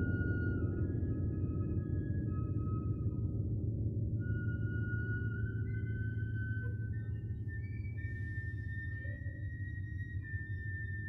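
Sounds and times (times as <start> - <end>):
high sustained tones: 0.0 - 11.0
low rumbling drone: 0.0 - 11.0.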